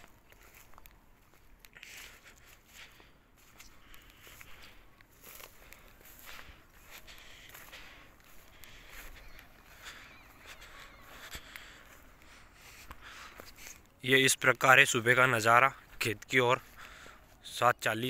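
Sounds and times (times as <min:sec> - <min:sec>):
footsteps swishing through wet grass: 0:00.0 - 0:14.0.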